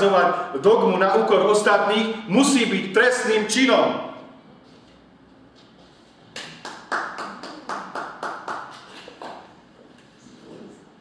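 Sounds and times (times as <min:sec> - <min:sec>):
hand clapping: 0:06.3 - 0:09.5.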